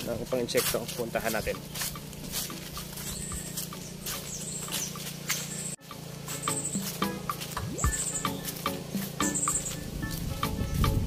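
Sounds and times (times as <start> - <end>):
footsteps on dry leaves: 0.0 - 11.0
steady low hum: 0.0 - 11.0
short high chirps: 6.4 - 10.8.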